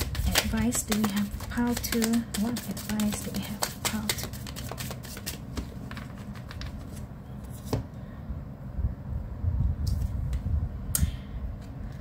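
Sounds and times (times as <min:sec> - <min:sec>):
card taps and bumps: 0:00.0 - 0:06.8
cards being shuffled: 0:00.0 - 0:07.8.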